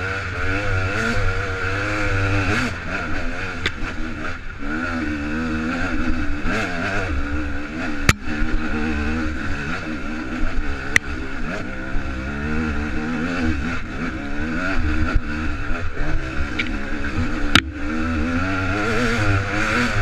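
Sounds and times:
dirt bike engine revving: 0.0 - 20.0
sharp knocks: 17.5 - 17.8.

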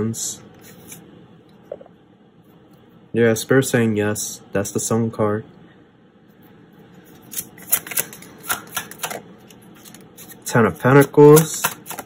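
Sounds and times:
cards flicking and slapping: 7.1 - 12.0.

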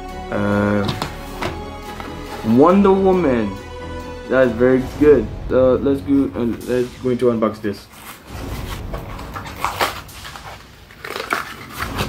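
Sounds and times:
plastic packaging crinkling and tearing: 7.9 - 12.0.

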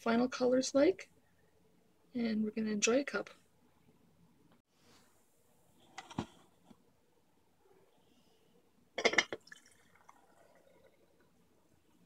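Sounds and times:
tea trickling into glass pitcher: 9.1 - 11.4.

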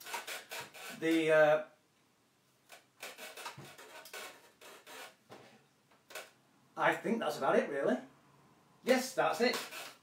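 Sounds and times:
plastic bottle rubbing and rustling: 3.0 - 5.2.

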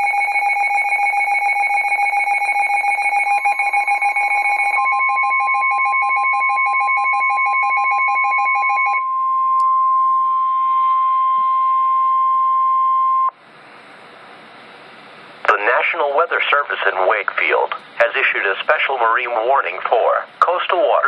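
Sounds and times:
rapid pulsing alarm beeps: 0.0 - 13.3
steady warning alarm tone: 0.0 - 13.4.

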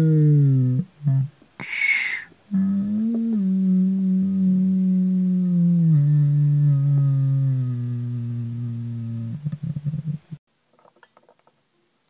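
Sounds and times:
person humming low note: 0.0 - 10.4.

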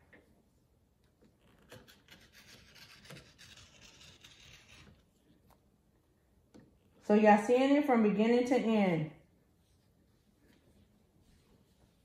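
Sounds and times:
rotary cutter scraping fabric: 1.5 - 5.1.

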